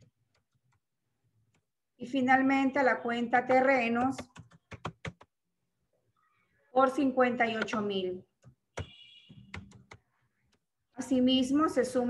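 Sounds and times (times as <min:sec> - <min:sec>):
computer keyboard clicks: 0:03.6 - 0:05.3, 0:09.5 - 0:10.6.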